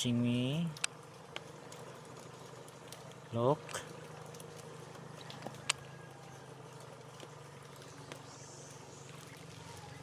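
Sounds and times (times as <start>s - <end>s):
distant engine hum: 0.0s - 10.0s.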